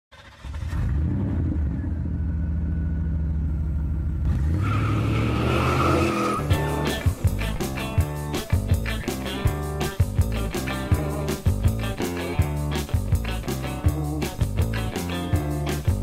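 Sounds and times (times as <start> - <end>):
car engine: 0.1 - 16.0
tyre squeal: 4.6 - 6.8
rock music with drums: 6.2 - 16.0.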